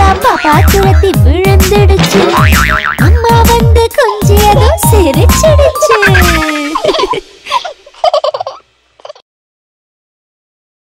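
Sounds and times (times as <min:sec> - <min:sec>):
cartoon baby giggling: 0:00.3 - 0:01.2, 0:05.3 - 0:09.2.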